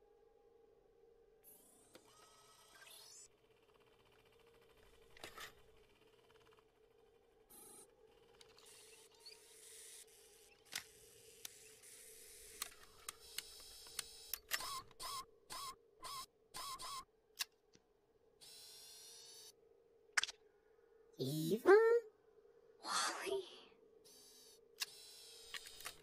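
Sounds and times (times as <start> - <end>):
faint steady hum: 19.2 - 26.0.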